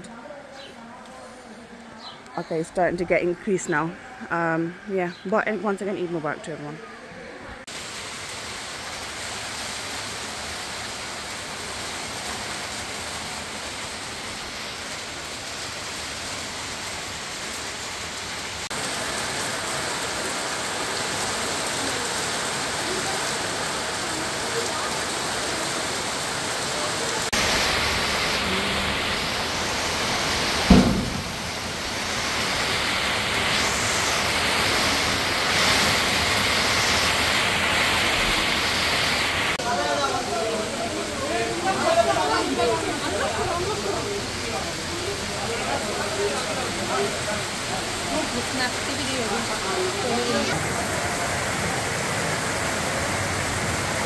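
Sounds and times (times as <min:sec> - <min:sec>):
rain falling: 0:07.1 - 0:54.0
low thud: 0:30.6 - 0:31.9.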